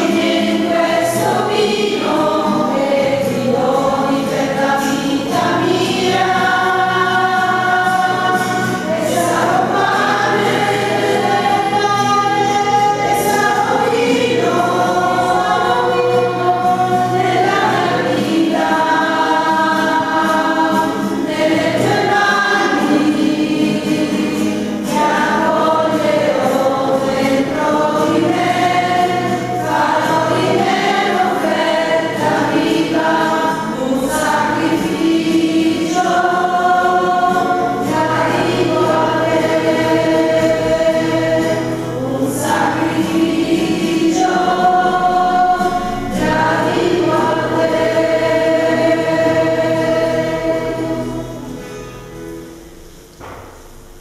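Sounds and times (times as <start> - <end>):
church choir singing a hymn: 0.0 - 53.8.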